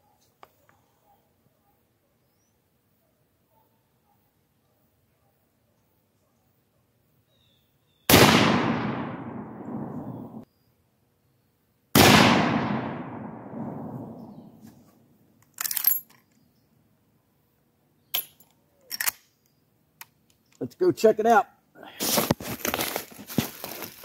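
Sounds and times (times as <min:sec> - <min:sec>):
rifle shots echoing: 0:08.1 - 0:10.4, 0:12.0 - 0:14.6.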